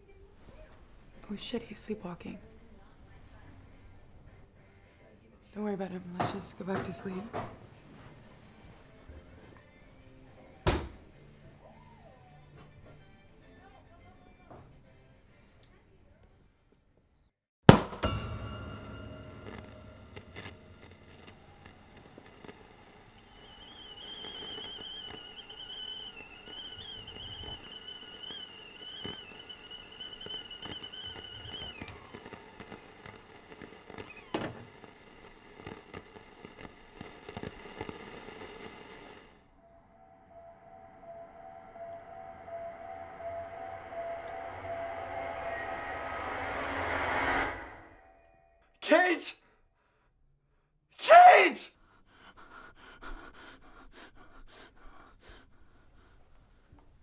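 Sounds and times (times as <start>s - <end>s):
sustained tone: 18.0s - 32.3s, 39.5s - 48.7s
kettle whistling: 18.0s - 48.2s.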